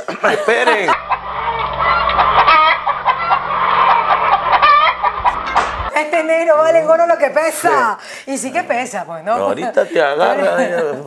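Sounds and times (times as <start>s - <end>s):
chickens clucking: 0.9s - 5.9s
low hum: 0.9s - 5.9s.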